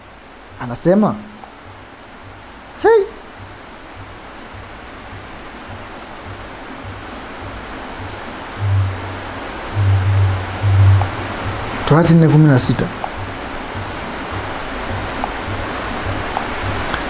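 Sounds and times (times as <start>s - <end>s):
microphone hiss: 0.0s - 17.0s
low muffled rumbles: 3.3s - 17.0s.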